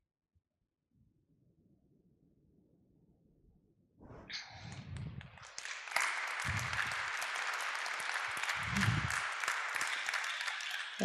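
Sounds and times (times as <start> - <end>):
audience applauding: 5.3 - 11.0.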